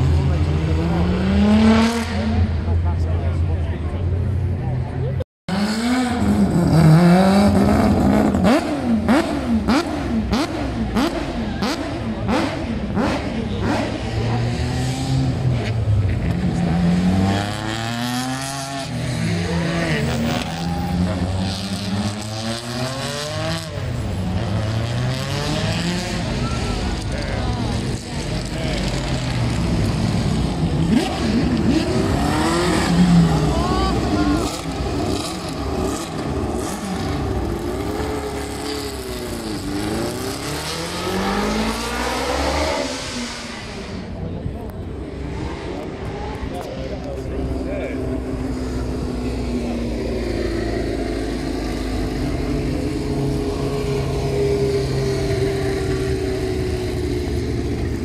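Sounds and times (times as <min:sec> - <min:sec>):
engines revving: 0:00.0 - 0:58.0
racing cars driving past: 0:00.0 - 0:58.0.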